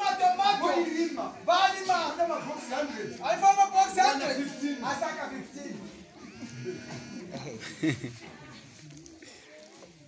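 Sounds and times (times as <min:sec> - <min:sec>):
man's loud voice: 0:00.0 - 0:05.5
faint indistinct voices: 0:00.0 - 0:10.0.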